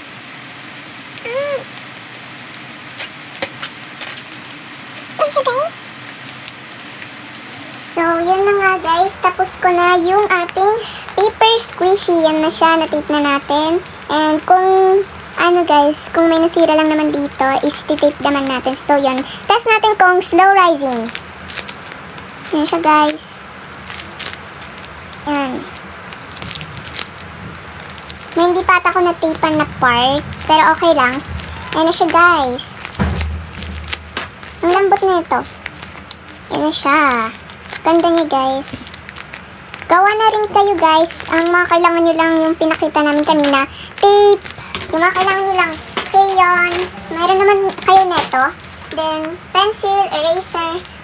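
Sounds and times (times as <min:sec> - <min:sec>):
paper squishy crinkling: 0:00.0 - 0:51.0
steady background hiss: 0:00.0 - 0:51.0
tape clicks and rustles: 0:00.0 - 0:51.0.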